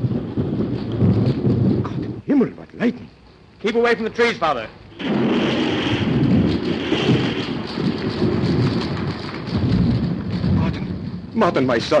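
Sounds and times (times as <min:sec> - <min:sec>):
lightning strike and thunder crash: 0:00.0 - 0:02.2, 0:04.9 - 0:12.0.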